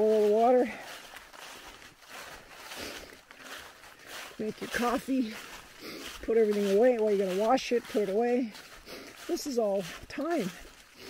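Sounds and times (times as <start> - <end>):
footsteps through dry leaves: 0.0 - 11.0.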